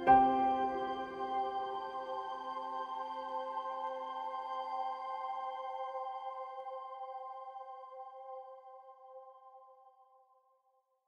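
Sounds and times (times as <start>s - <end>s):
ambient music sustained chord: 0.0s - 8.4s.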